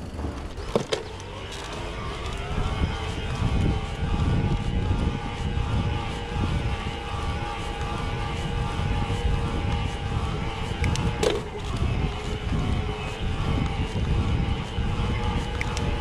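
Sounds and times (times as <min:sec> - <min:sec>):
bike mechanical whine: 0:00.0 - 0:16.0
wind on microphone: 0:00.0 - 0:16.0.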